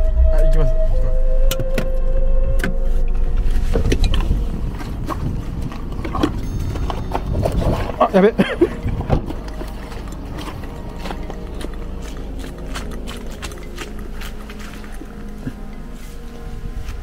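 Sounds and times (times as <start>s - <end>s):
car rumbling over dirt track: 3.0s - 14.2s
footsteps on gravel and leaves: 3.4s - 17.0s.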